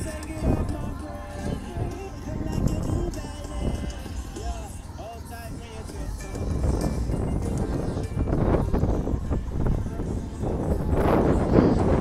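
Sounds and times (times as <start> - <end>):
crowd voices: 0.0 - 12.0
music: 0.0 - 12.0
wind buffeting microphone: 0.0 - 12.0.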